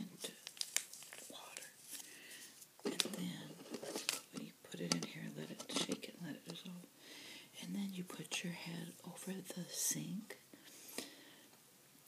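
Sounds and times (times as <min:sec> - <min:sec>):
packet rustling: 0:00.2 - 0:06.7
woman talking softly: 0:07.6 - 0:10.4.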